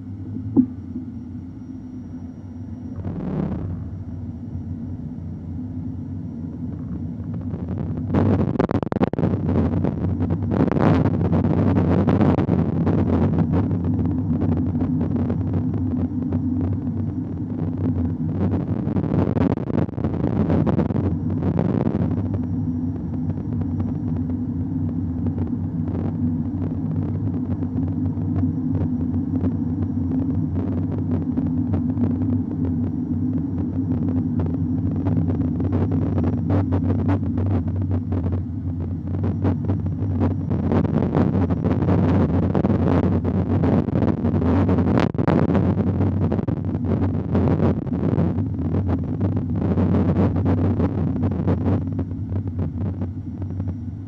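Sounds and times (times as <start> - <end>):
car engine and road drone: 0.0 - 54.0.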